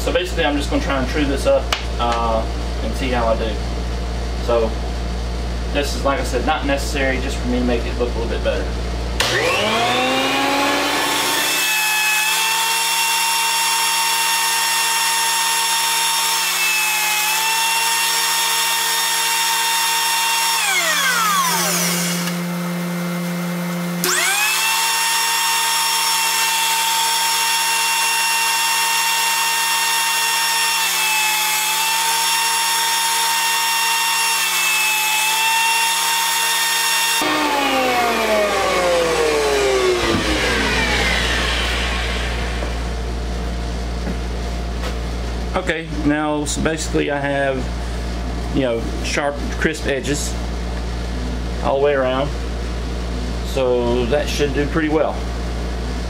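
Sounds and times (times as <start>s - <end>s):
thickness planer motor whining: 9.2s - 44.3s.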